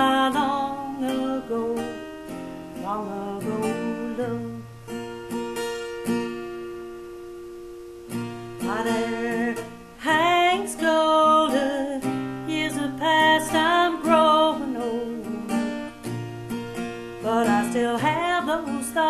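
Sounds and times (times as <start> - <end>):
woman singing with vibrato: 0.0 - 2.1, 2.8 - 4.8, 8.5 - 15.9, 17.2 - 19.0
acoustic guitar strumming: 0.0 - 19.0.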